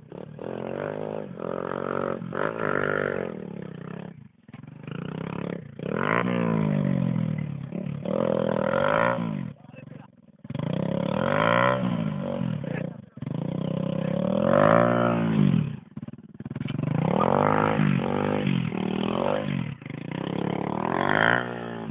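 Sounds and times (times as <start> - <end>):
dirt bike engine revving: 0.0 - 21.9.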